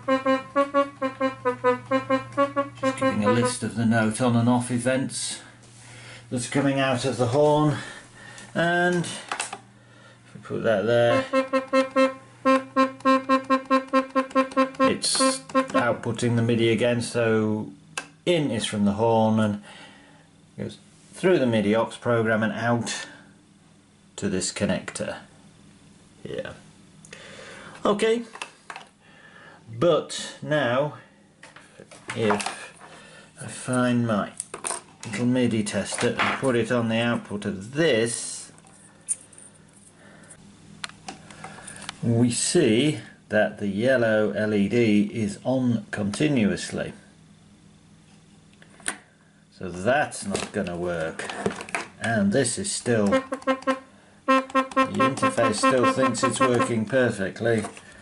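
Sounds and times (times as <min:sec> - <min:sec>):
electronic horn short notes: 0:00.0 - 0:03.8, 0:11.1 - 0:16.1, 0:53.0 - 0:56.9.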